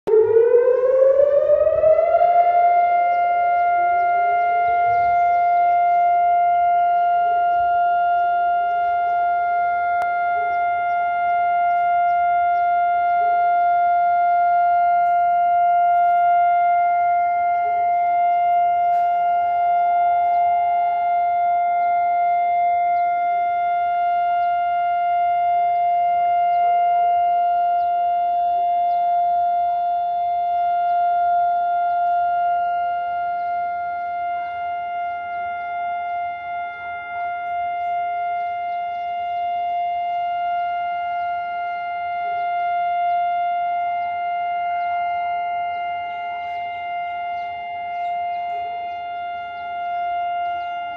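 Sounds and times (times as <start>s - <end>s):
civil defence siren: 0.0s - 50.9s
faint distant sirens: 0.0s - 50.9s.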